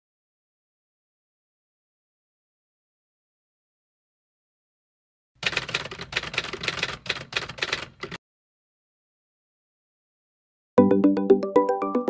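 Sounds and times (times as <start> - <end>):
typewriter key strikes: 5.4 - 8.2.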